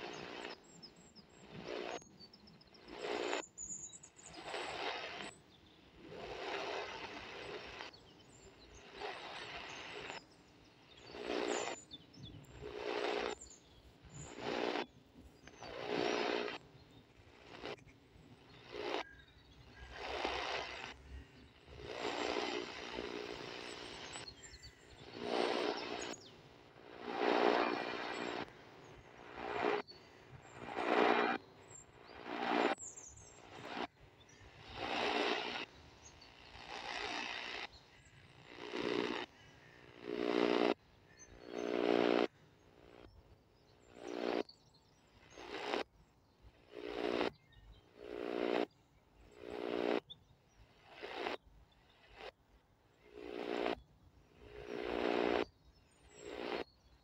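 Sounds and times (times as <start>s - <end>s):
radio static and garbled signal: 0.0s - 0.6s, 1.4s - 2.1s, 2.8s - 3.5s, 4.2s - 5.3s, 6.0s - 8.0s, 8.7s - 10.2s, 10.9s - 43.1s, 43.8s - 44.5s, 45.3s - 45.9s, 46.6s - 48.7s, 49.3s - 50.0s, 50.8s - 51.4s, 53.0s - 55.5s, 56.1s - 56.7s.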